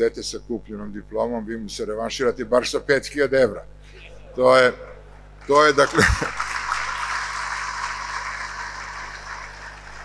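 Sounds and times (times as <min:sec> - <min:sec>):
audience laughing: 0:04.0 - 0:06.9
audience applauding: 0:04.7 - 0:10.0.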